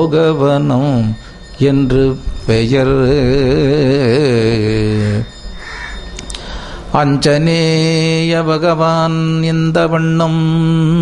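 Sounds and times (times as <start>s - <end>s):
man singing long note: 0.0s - 5.4s.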